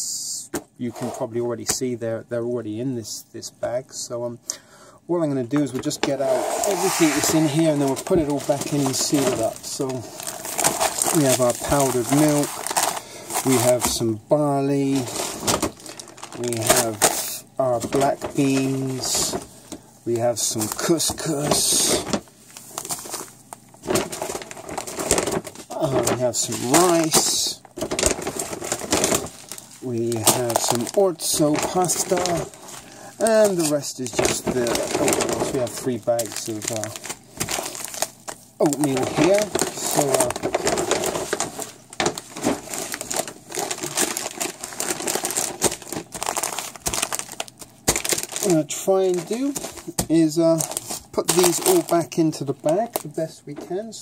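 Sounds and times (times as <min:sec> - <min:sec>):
plastic packaging crinkling: 0:05.2 - 0:54.0.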